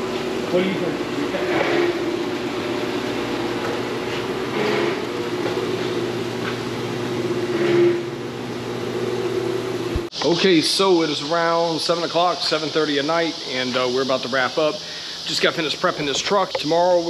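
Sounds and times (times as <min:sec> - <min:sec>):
machine humming: 0:00.0 - 0:17.0.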